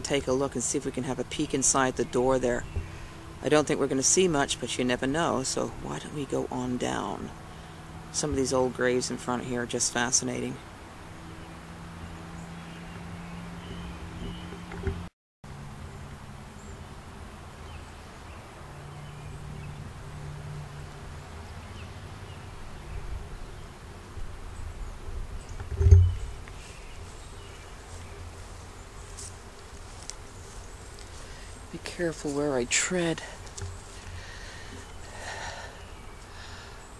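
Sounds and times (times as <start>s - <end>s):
outdoor background hiss: 0.0s - 36.9s
flying insect buzzing: 2.6s - 3.4s, 22.3s - 32.2s, 33.2s - 36.9s
low thump: 25.6s - 26.4s.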